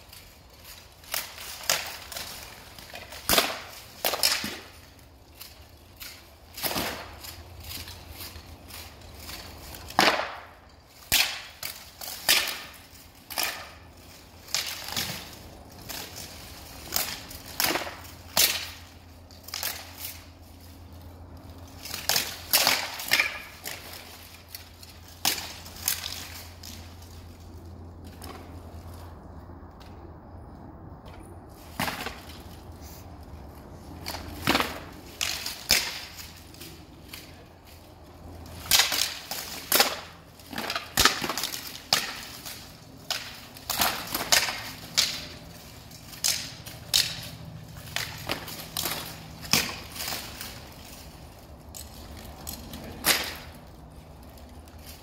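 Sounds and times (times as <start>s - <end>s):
swords clashing on armour: 0.6s - 20.3s, 21.8s - 26.7s, 34.0s - 37.4s, 38.6s - 50.9s, 51.7s - 53.6s.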